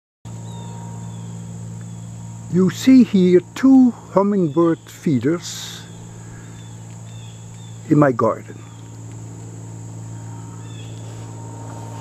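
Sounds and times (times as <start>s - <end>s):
insects droning: 0.3s - 12.0s
low hum: 0.3s - 12.0s.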